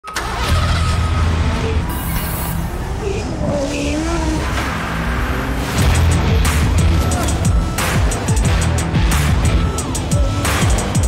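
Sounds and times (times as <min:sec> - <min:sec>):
car engine rumble: 0:00.0 - 0:11.0
music: 0:05.8 - 0:11.0.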